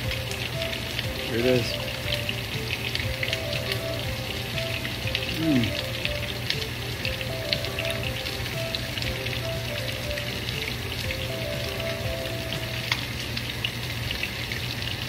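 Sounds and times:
hot oil frying: 0.0s - 15.0s
soft background music: 0.0s - 15.0s.

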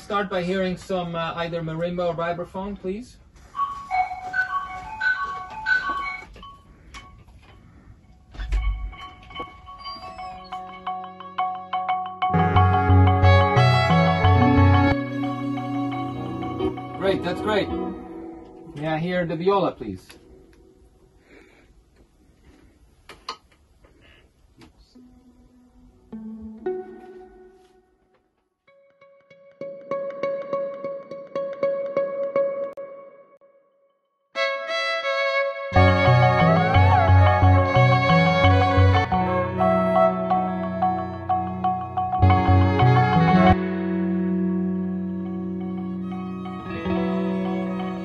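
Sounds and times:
mallet percussion ringing notes: 3.6s - 6.7s, 8.7s - 18.7s
viola long bowed notes: 10.5s - 18.9s, 34.7s - 48.0s.

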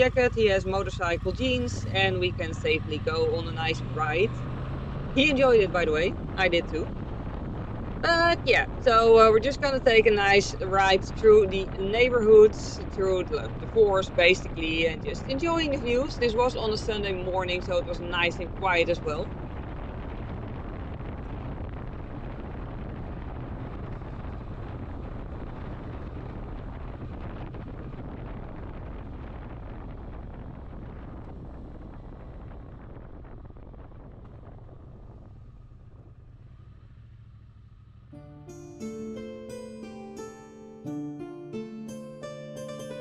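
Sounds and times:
motorcycle engine running: 0.0s - 38.2s
wind and road noise: 0.0s - 38.2s
piano-like music: 38.1s - 43.0s.

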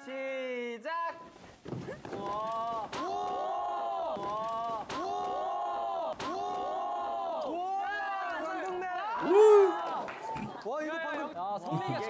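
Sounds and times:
young men cheering and shouting: 2.2s - 12.0s.

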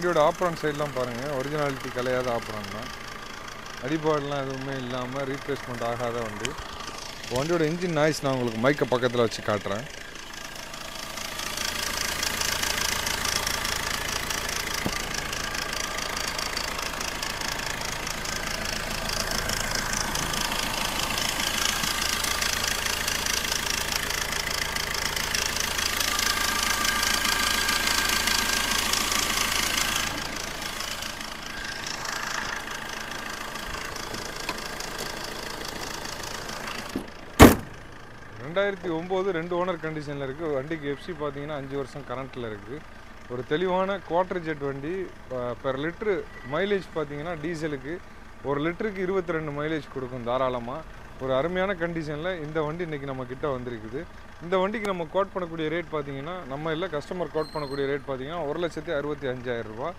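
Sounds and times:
diesel engine idling: 0.0s - 59.9s
sharp knock: 37.4s - 37.7s.

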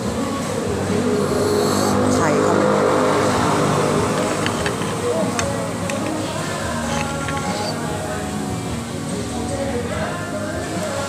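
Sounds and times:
people talking: 0.2s - 8.0s.

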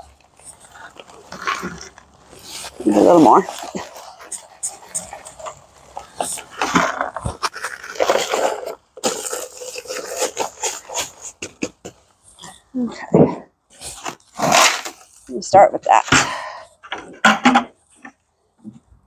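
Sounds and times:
paper bag crackling: 0.0s - 11.9s.

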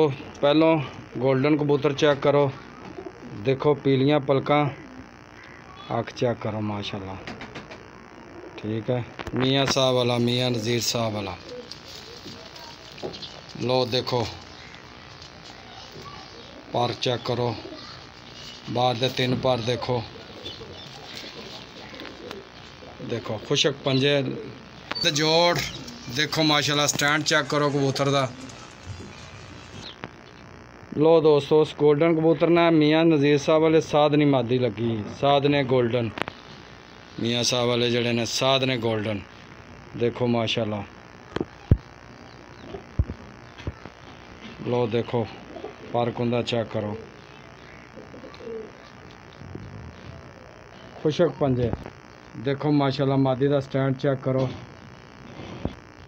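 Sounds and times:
pigeons cooing softly: 2.4s - 3.8s, 4.5s - 5.9s, 6.9s - 8.9s, 9.8s - 30.6s, 41.5s - 52.3s.

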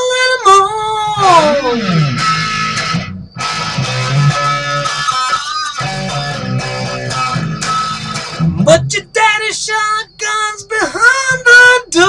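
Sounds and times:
electric guitar strumming: 0.0s - 12.0s.

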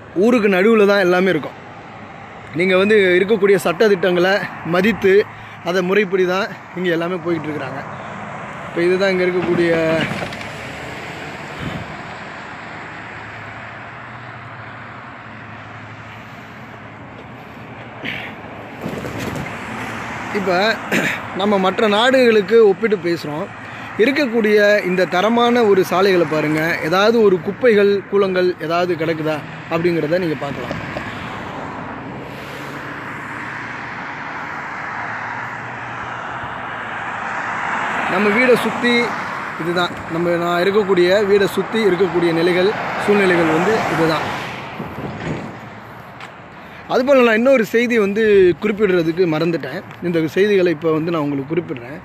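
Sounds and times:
roadside traffic: 0.0s - 52.0s
rushing vehicle noise: 0.0s - 52.0s
man talking: 0.2s - 1.6s, 2.5s - 8.0s, 8.7s - 10.2s, 20.3s - 30.9s, 38.0s - 44.4s, 46.8s - 52.0s.

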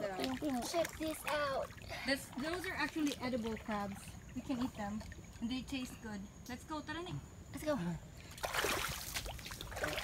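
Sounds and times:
footsteps wading through water: 0.0s - 5.4s, 8.3s - 10.0s.

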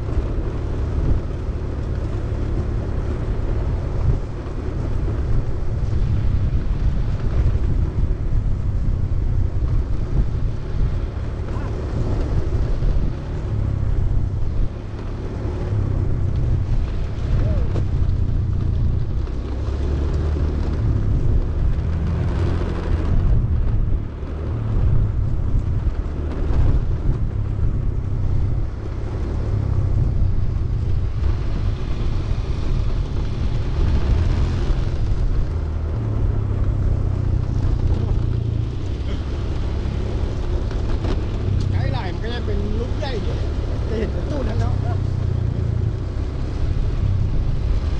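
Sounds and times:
skate wheels rolling on concrete: 0.0s - 47.9s
wind buffeting microphone: 0.0s - 47.9s.

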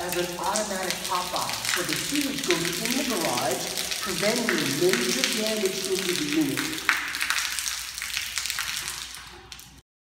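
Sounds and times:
water splashing onto concrete: 0.0s - 9.8s.

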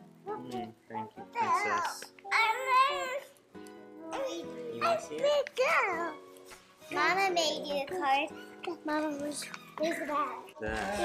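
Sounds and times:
toddler whining: 2.3s - 3.3s.

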